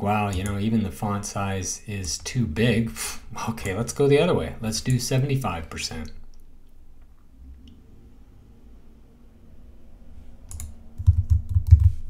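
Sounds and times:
keyboard key taps: 10.5 - 12.0.

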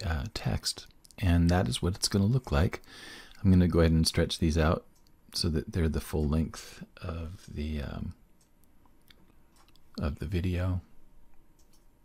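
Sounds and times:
faint clicks: 11.3 - 11.9.

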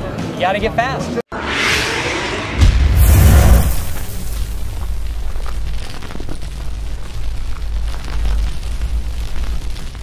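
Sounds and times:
scattered crackles: 3.0 - 10.0.

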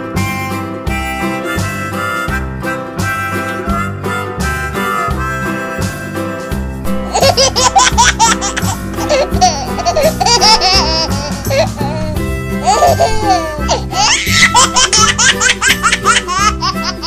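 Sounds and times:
instrumental music with a beat: 0.0 - 17.0
baby giggling: 7.1 - 17.0.

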